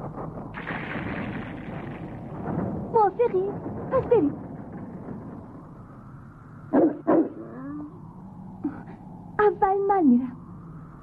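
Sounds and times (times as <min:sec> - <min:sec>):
large dog barking: 0:06.7 - 0:07.4.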